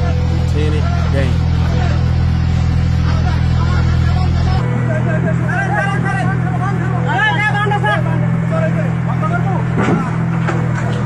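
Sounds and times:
road roller diesel engine running: 0.0 - 11.0.

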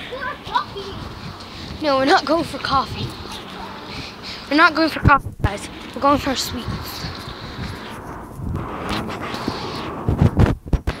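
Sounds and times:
footsteps on wet pavement: 0.0 - 8.5
wind rumbling on microphone: 0.0 - 11.0
loud low thumps: 0.7 - 11.0.

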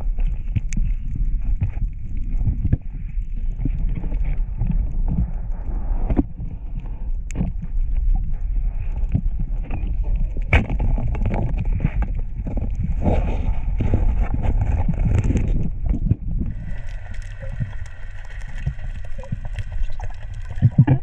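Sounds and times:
low underwater rumble: 0.0 - 21.0.

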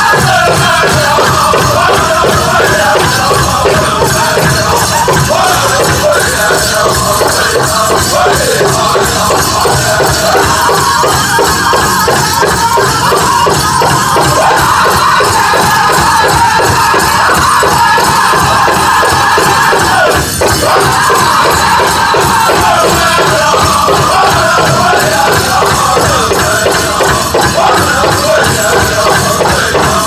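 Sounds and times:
big drum steady beat: 0.0 - 30.0
men singing in unison: 0.0 - 30.0.

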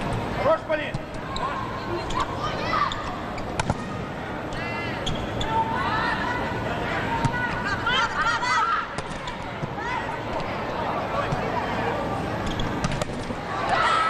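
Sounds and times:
sports hall noise: 0.0 - 14.0.

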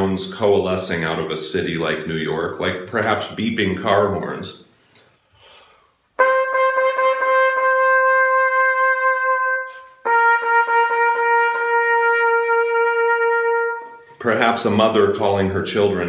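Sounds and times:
solo trumpet long notes: 6.2 - 14.2.

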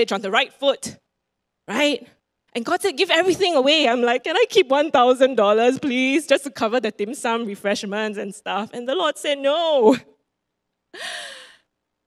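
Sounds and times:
woman sighing: 11.0 - 11.6.

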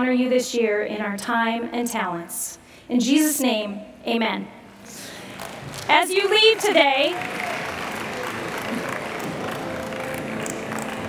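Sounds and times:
audience applause: 5.3 - 11.0.

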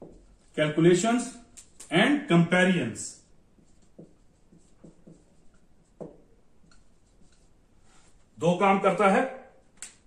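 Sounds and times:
pen scratching on paper: 3.5 - 7.6.

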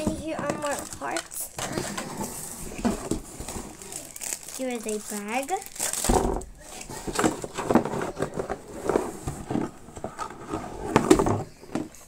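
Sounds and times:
plastic toy parts knocking: 0.0 - 2.1
packaging rustling: 0.0 - 11.6.

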